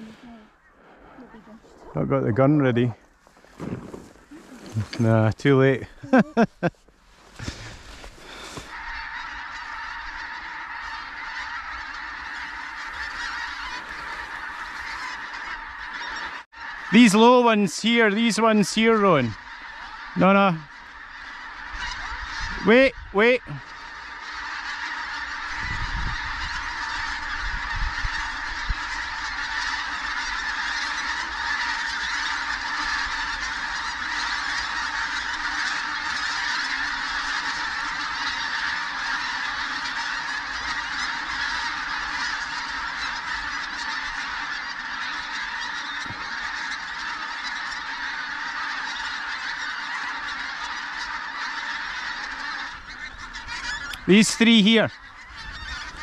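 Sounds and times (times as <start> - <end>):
geese honking: 0.0 - 56.0.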